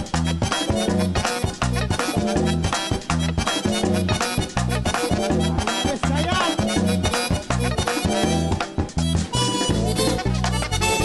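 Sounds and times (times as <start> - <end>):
button accordion: 0.0 - 11.0
merengue band playing: 0.0 - 11.0
tambora drum: 0.0 - 11.0.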